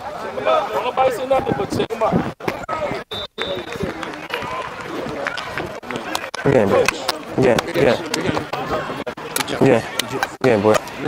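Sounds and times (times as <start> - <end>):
indistinct voices and chatter: 0.0 - 11.0.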